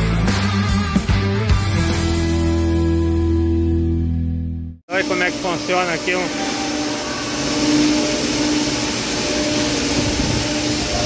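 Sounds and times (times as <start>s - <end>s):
broad rushing noise: 4.9s - 11.0s
machinery humming: 4.9s - 11.0s.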